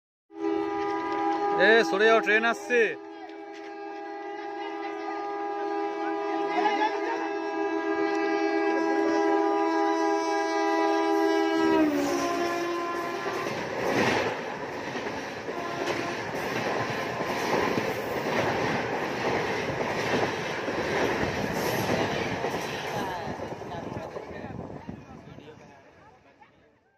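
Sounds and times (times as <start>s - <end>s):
train horn blast: 0.3s - 14.4s, 15.2s - 19.6s
train coaches rumbling past: 0.3s - 26.4s.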